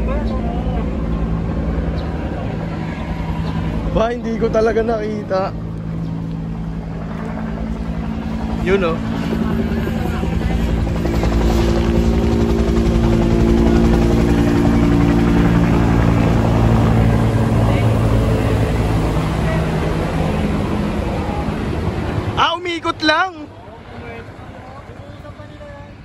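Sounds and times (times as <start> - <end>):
helicopter rotor chop: 0.0 - 26.0.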